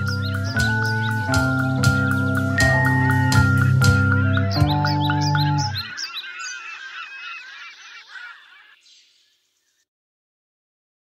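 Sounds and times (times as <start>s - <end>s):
many birds calling: 0.0s - 9.8s.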